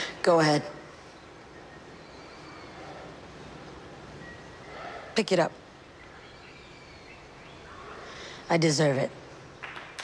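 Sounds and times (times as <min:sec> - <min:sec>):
faint background ambience: 0:00.0 - 0:10.0.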